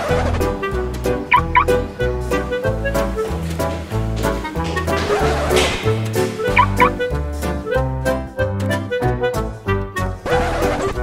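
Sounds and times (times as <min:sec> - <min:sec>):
background music: 0:00.0 - 0:11.0
car alarm chirps: 0:01.3 - 0:01.8.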